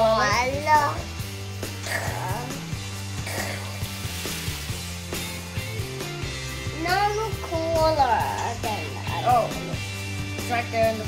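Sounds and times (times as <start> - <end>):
child speaking: 0.0 - 1.1, 6.7 - 9.6
background music with bass line: 0.0 - 11.0
child coughing: 1.8 - 2.3, 3.2 - 3.8.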